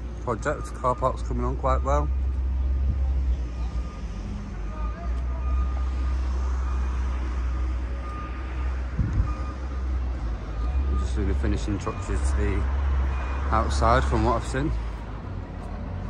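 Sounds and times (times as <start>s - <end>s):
road traffic rumble: 0.0s - 16.0s
faint high beep: 3.6s - 7.0s.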